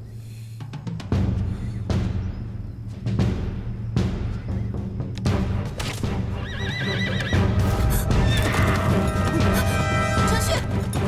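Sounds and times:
dramatic background music: 0.7 - 11.0
horse whinnying: 6.3 - 9.8.

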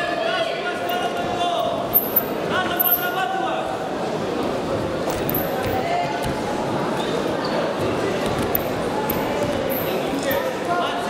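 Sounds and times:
voices calling out in echoing hall: 0.0 - 11.0.

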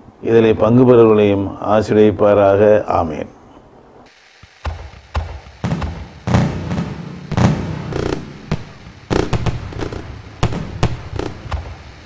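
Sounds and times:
fireworks bangs and crackles: 4.5 - 12.0.

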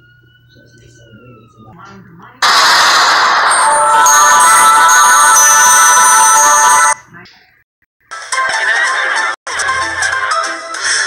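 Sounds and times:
loud crash of noise: 2.4 - 4.8.

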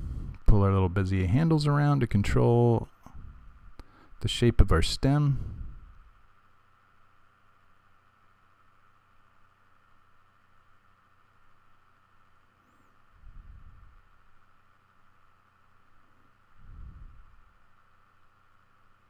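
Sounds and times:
microphone hiss: 0.0 - 19.0.

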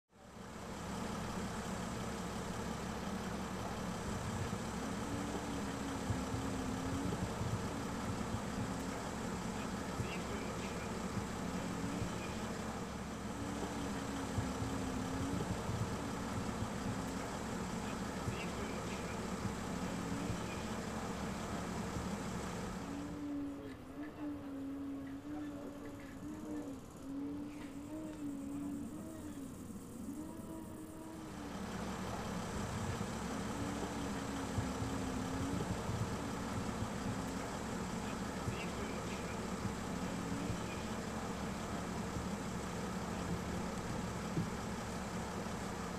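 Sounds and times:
vehicle engine idling: 0.1 - 45.9.

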